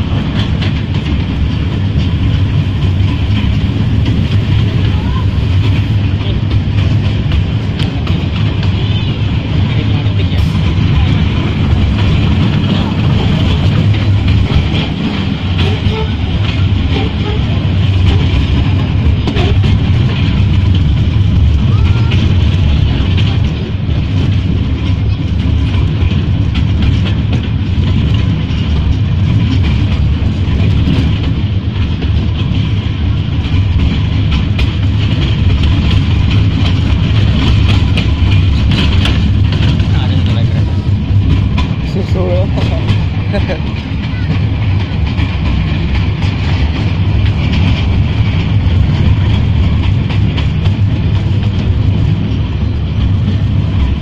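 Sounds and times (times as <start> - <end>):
train cars rattling: 0.0 - 54.0
train rumble: 0.0 - 54.0.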